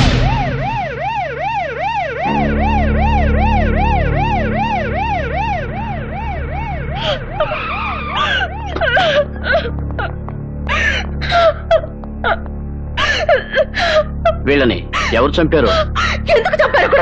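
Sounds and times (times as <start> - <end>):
emergency vehicle siren wailing: 0.0 - 11.6
low steady drone: 0.0 - 17.0.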